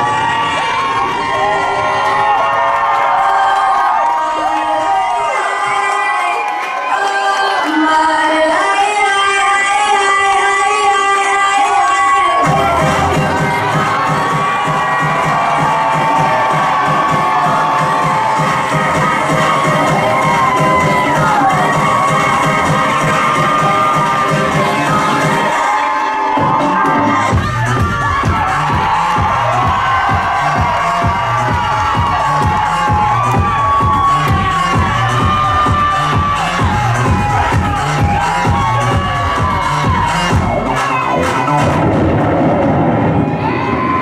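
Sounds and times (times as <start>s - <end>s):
crowd cheering: 0.0s - 44.0s
loud music with steady beat: 3.2s - 44.0s.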